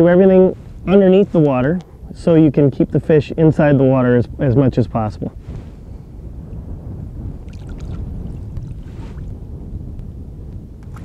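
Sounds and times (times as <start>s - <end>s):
wind rumble on microphone: 0.0s - 11.0s
water splashes and drips: 7.5s - 9.3s.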